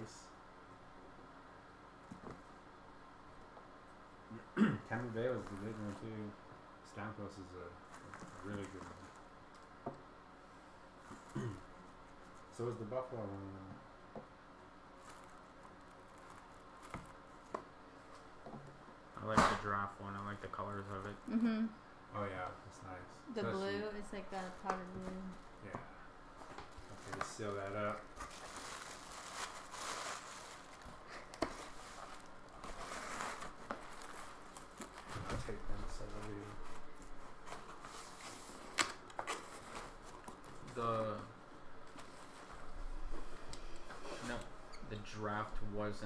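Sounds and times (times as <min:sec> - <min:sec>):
tissue paper rustling: 0:26.8 - 0:40.7.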